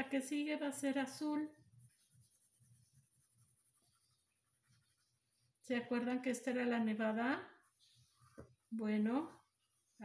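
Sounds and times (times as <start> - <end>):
pencil scratching on paper: 0.8 - 5.7, 7.0 - 10.0.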